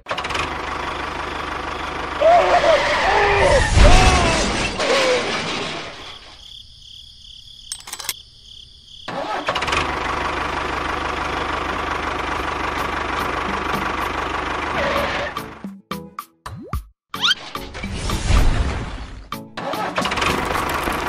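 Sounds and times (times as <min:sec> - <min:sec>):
tractor engine running: 0:00.1 - 0:02.8, 0:09.1 - 0:15.6, 0:20.0 - 0:21.0.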